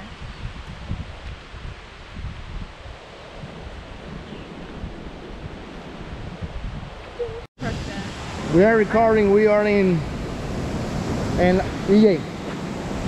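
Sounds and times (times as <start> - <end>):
wind buffeting microphone: 0.0 - 13.0
wind in foliage: 0.0 - 13.0.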